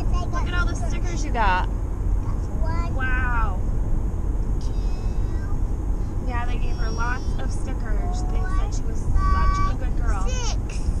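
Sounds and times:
car cabin road rumble: 0.0s - 11.0s
child's high-pitched vocal sound: 8.0s - 11.0s.

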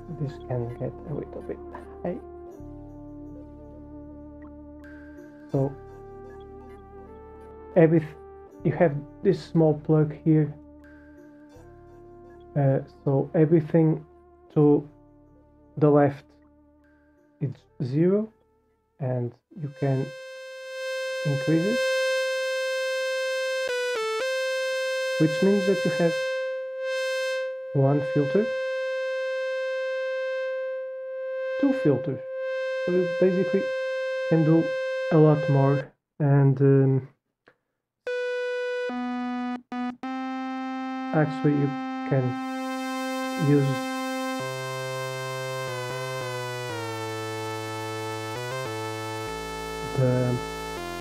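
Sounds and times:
buzzy synthesizer note: 0.0s - 9.6s, 19.6s - 35.9s, 38.1s - 51.0s.

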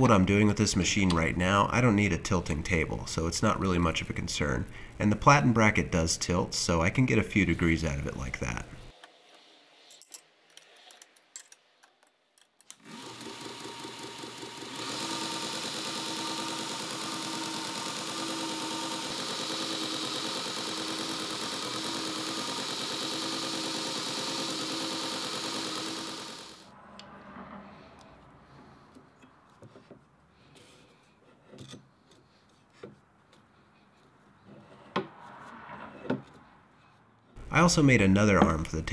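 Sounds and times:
belt grinder running: 12.8s - 26.7s.

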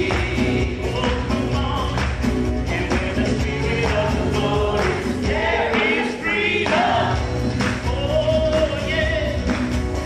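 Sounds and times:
people singing: 0.0s - 9.4s
acoustic guitar: 0.0s - 10.0s
worship band playing: 0.0s - 10.0s.

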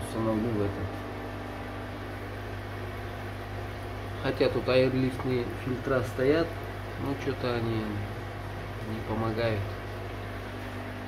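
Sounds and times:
aquarium air pump hum: 0.0s - 11.0s.

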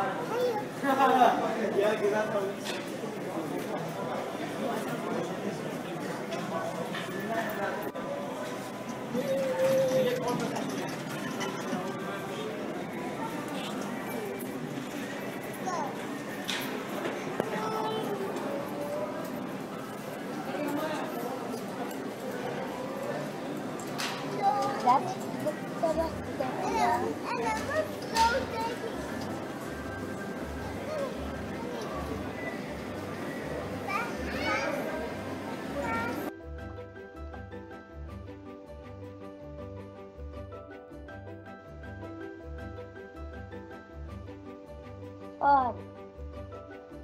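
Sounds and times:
children chattering and calling: 0.0s - 36.4s
indistinct voices: 3.0s - 36.3s.

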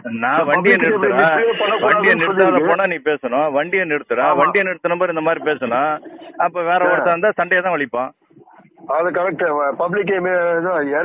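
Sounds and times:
man talking over telephone: 0.0s - 8.2s, 8.8s - 11.0s.

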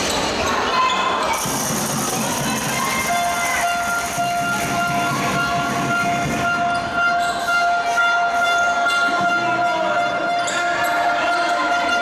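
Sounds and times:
basketball game noise: 0.0s - 12.0s.

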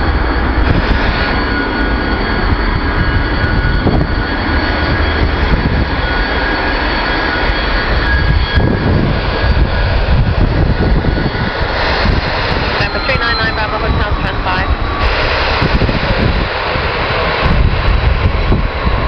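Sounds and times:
jet engines rumbling and whining: 0.0s - 19.0s.

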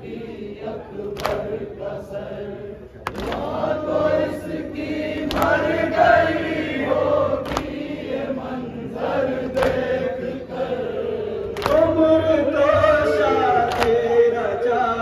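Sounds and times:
men chanting a lament: 0.0s - 15.0s
hands slapping chests: 1.2s - 1.5s, 3.0s - 3.6s, 5.2s - 5.7s, 7.4s - 7.8s, 9.5s - 9.9s, 11.5s - 11.9s, 13.6s - 14.0s.

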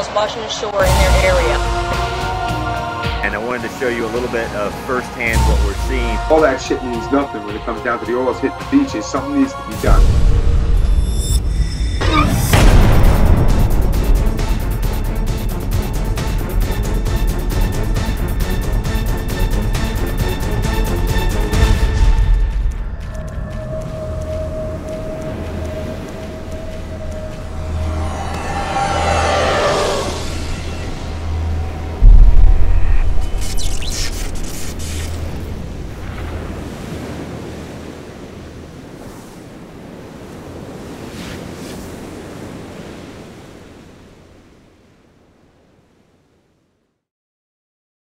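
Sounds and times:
low pulsing drone: 9.0s - 36.3s
heavy boom: 10.0s - 14.9s, 30.0s - 33.6s
rising whoosh: 21.6s - 36.8s.

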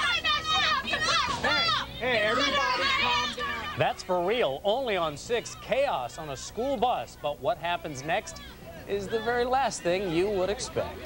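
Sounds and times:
children yelling and screaming: 0.0s - 11.0s.

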